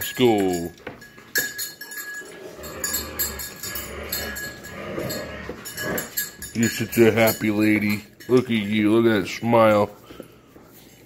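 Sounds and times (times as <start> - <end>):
dog collar tags jingling: 0.0 - 9.9.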